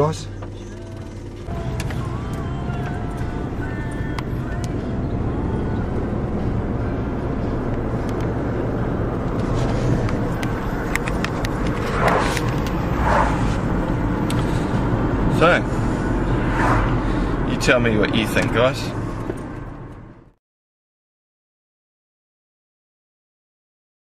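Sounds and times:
car road and engine noise: 0.0s - 20.4s.

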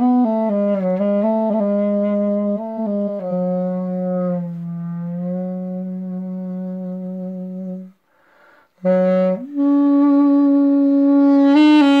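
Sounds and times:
duduk playing long low note: 0.0s - 8.0s, 8.8s - 12.0s
soft breathy sound: 7.9s - 8.8s.

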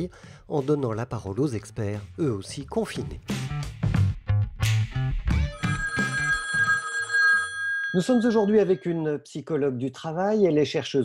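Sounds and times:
two-tone telephone ring: 5.5s - 9.0s.

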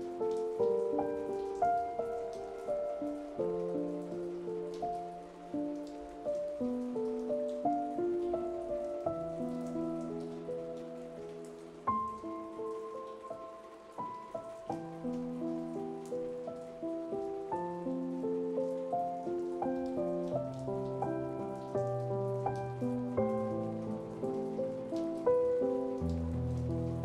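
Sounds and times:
gentle solo piano melody: 0.0s - 27.0s
steady rain falling: 0.0s - 27.0s.

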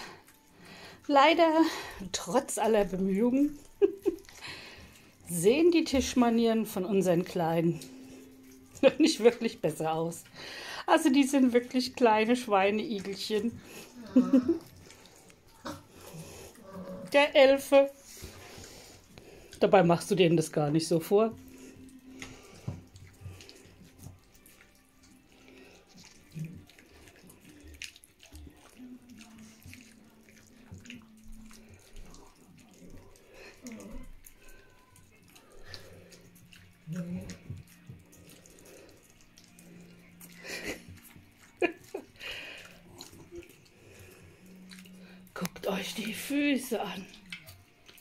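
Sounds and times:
dogs lapping and slurping: 0.0s - 48.0s.

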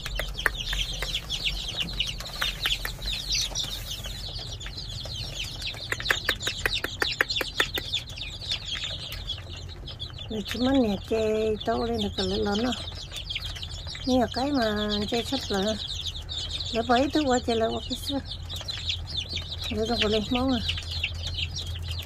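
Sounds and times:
sharp taps: 0.0s - 3.8s, 5.6s - 9.3s
chicks peeping: 0.0s - 22.0s.

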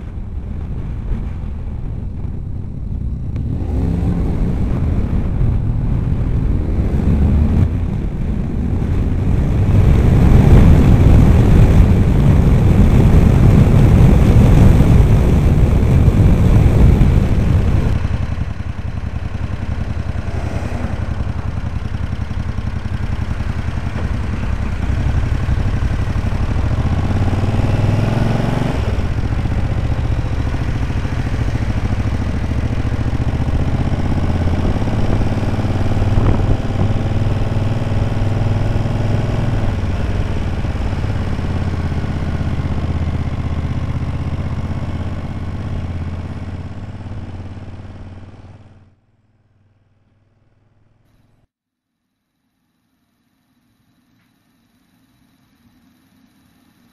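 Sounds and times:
motorcycle engine running: 0.0s - 51.5s.

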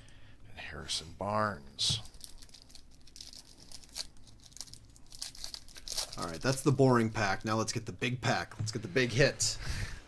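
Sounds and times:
foil wrapper crinkling: 2.0s - 7.6s.

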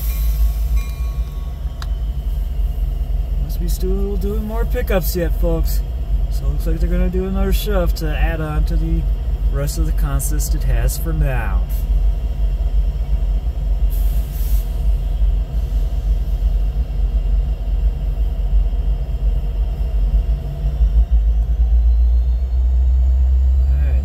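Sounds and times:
diesel locomotive engine rumble: 0.0s - 24.0s.

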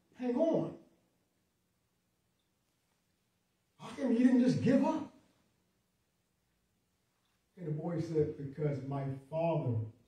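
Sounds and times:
man talking: 0.0s - 0.8s, 3.8s - 5.2s, 7.5s - 10.0s.

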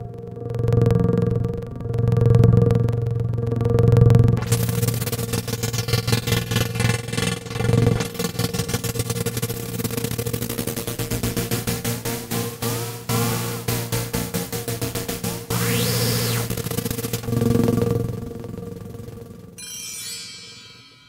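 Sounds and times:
rapid stuttering synth pulse: 0.0s - 19.6s
synthesizer drone: 0.0s - 20.5s.

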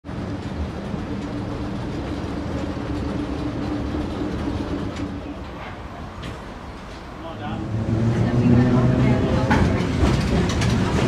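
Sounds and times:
streetcar hum: 0.0s - 11.0s
streetcar rumbling on rails: 0.0s - 11.0s.

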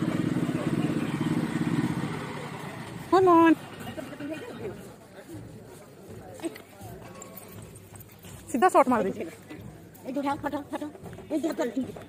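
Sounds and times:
faint voices: 0.0s - 12.0s
outdoor background noise: 0.0s - 12.0s.

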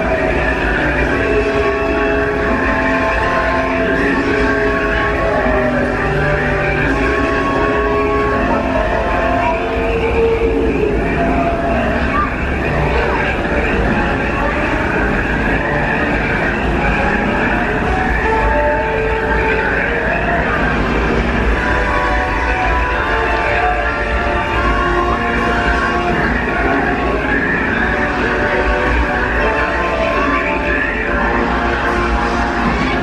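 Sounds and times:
background music of held notes: 0.0s - 33.0s
train rumbling along track: 0.0s - 33.0s.

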